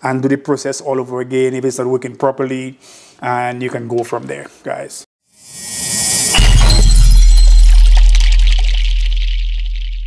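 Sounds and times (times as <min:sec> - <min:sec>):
glassy shattering shimmer: 0:05.4 - 0:10.0
rising whoosh: 0:05.4 - 0:10.0
deep bass hit: 0:06.2 - 0:10.0.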